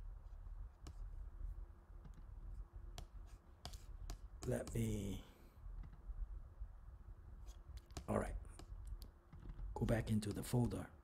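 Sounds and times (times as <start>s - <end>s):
computer mouse clicks: 7.5s - 9.7s.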